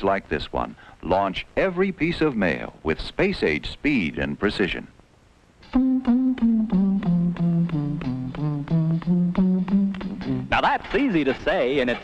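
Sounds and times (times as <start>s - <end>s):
person humming descending notes: 5.7s - 10.5s.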